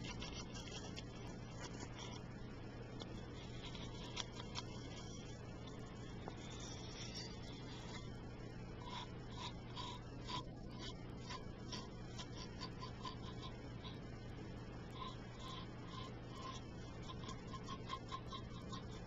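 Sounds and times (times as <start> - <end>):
recorder hum and hiss: 0.0 - 19.0.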